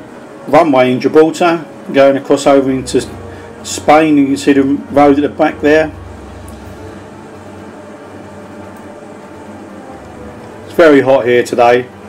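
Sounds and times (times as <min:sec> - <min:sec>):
low hum: 0:01.6 - 0:12.0.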